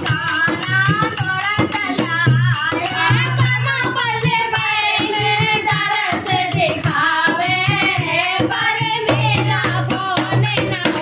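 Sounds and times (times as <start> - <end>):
women singing devotional song: 0.0 - 11.0.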